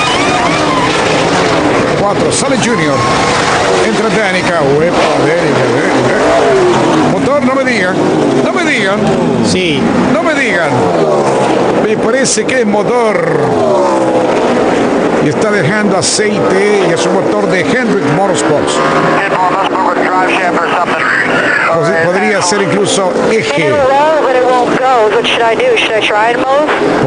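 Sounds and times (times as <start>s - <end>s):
race car engine pitch falling: 0.0s - 25.1s
steady background noise: 0.0s - 27.0s
man speaking: 2.0s - 11.2s, 11.8s - 14.1s, 15.2s - 24.0s.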